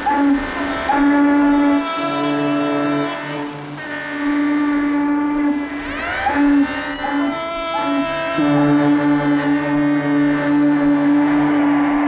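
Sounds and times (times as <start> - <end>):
ships' whistles and horns: 0.0 - 12.0
whistle with rising pitch: 5.5 - 12.0.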